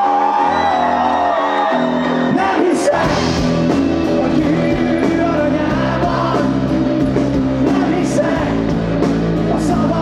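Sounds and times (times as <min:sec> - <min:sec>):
electric guitar chords: 0:00.0 - 0:10.0
bass line: 0:00.5 - 0:10.0.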